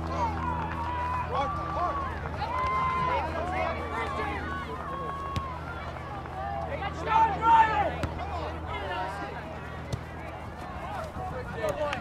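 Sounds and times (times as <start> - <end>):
distant shouting voices: 0.0 - 12.0.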